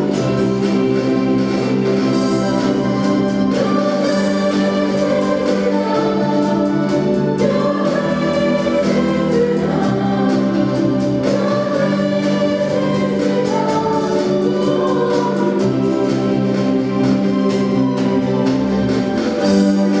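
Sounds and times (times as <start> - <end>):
choir singing gospel song: 0.0 - 20.0
drums with steady beat: 0.0 - 20.0
keyboard: 0.0 - 20.0.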